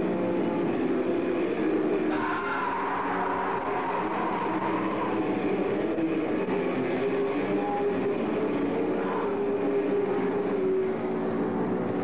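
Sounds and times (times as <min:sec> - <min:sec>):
distorted black metal: 0:00.8 - 0:10.4.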